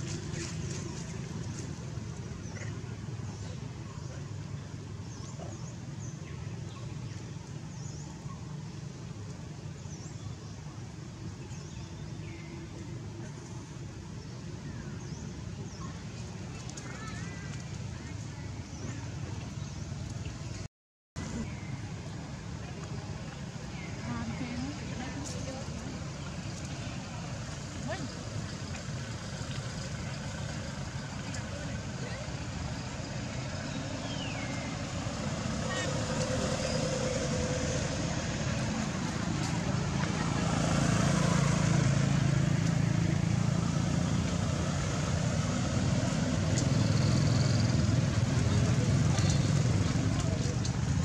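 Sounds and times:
vehicle engine rumbling: 0.0 - 51.0
faint voices: 21.2 - 43.1, 46.8 - 51.0.

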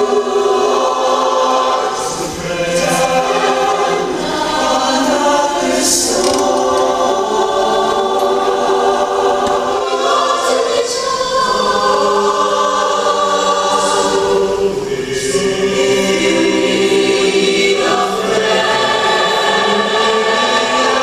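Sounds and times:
mixed choir singing: 0.0 - 21.0.

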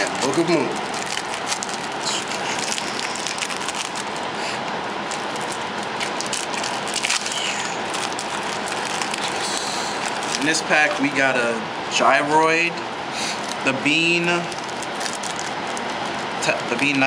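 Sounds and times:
foil wrappers crinkling: 0.0 - 4.4, 5.0 - 11.1, 13.4 - 17.0.

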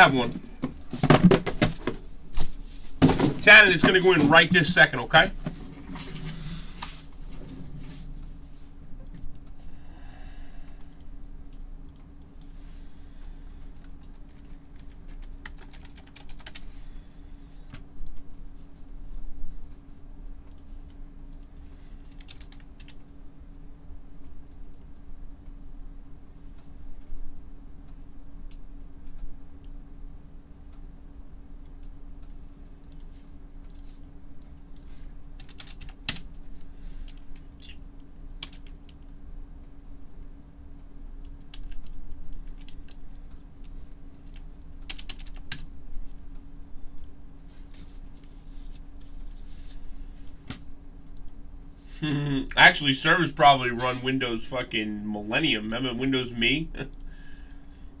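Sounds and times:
steady low hum: 0.0 - 58.0
typing on computer keyboard: 13.8 - 16.7, 20.4 - 23.1, 35.4 - 36.3, 38.4 - 39.2, 41.2 - 43.0, 44.2 - 45.6.

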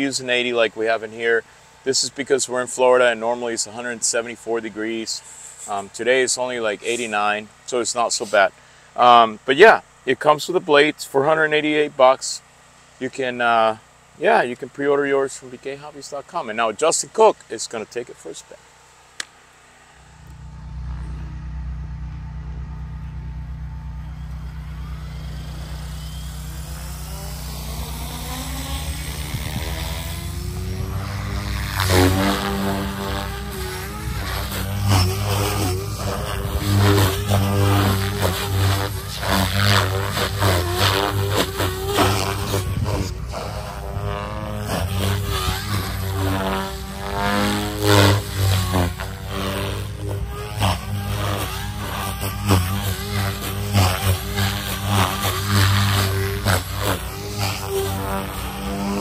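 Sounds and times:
rc helicopter rotor whine: 0.0 - 59.0.

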